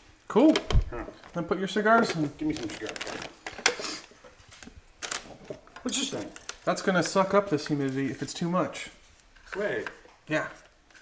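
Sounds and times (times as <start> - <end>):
plastic bag crinkling: 1.2 - 8.4.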